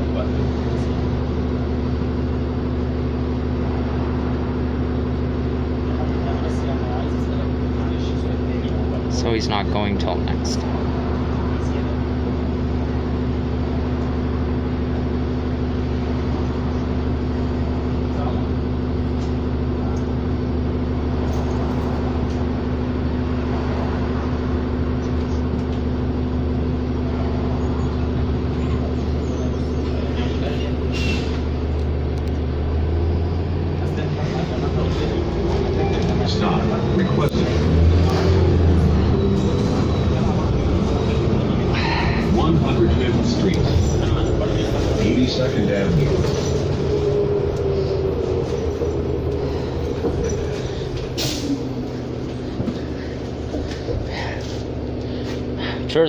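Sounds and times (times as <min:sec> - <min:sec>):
bus diesel engine idling: 0:00.0 - 0:56.0.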